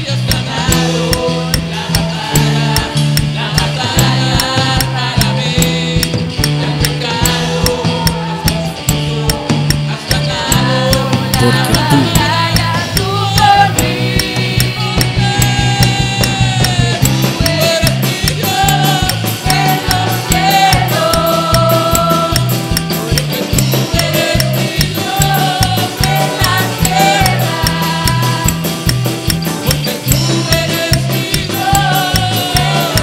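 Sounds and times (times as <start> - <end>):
drum kit with fast cymbals: 0.0 - 33.0
electric bass line: 0.0 - 33.0
electric guitar: 0.0 - 33.0
keyboard: 0.0 - 33.0.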